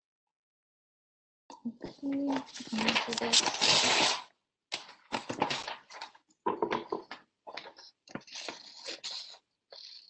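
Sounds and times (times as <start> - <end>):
magazine paper rustling: 2.0 - 9.4.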